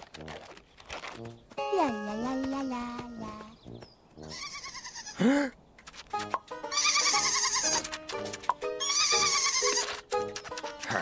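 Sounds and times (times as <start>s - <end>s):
light musical score: 1.2s - 4.4s, 6.0s - 11.0s
cartoon sheep bleating: 4.3s - 5.3s, 6.7s - 7.8s, 8.8s - 10.0s.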